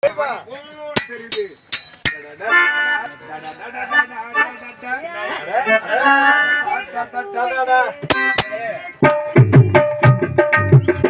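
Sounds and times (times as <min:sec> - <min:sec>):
electronic keyboard: 0:02.4 - 0:07.0.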